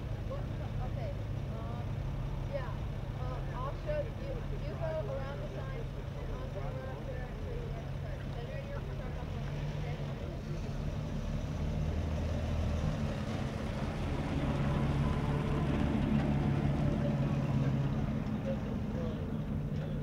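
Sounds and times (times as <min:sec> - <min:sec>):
pickup truck engine driving past: 0:09.0 - 0:20.0.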